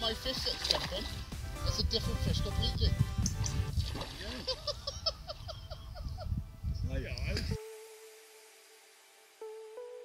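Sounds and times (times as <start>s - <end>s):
background music: 0.0s - 10.0s
wind buffeting microphone: 1.1s - 7.6s.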